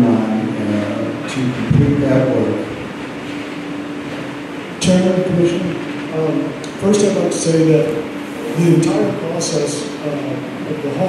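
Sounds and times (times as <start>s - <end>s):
man talking into microphone: 0.0s - 2.7s, 4.8s - 11.0s.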